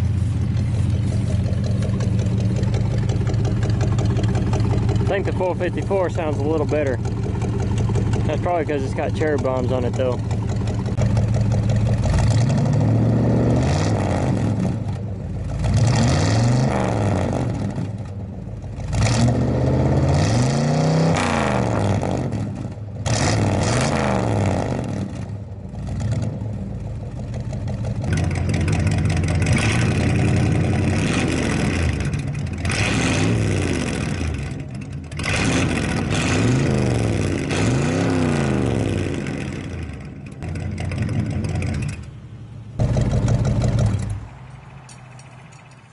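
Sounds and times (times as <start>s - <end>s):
car engine revving: 0.0s - 45.9s.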